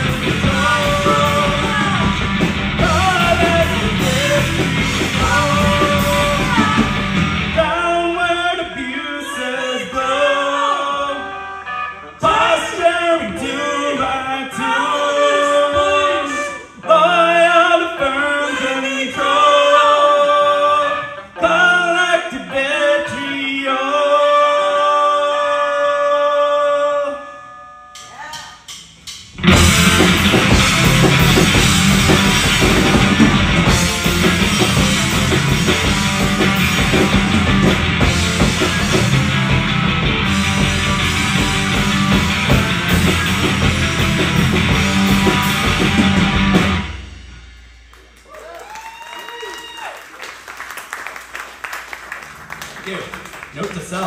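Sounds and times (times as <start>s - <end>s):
heavy rock guitar: 0.0s - 9.0s, 29.2s - 48.0s
rock band with drums: 0.0s - 25.4s, 27.5s - 54.0s
drum kit hits: 28.0s - 48.2s.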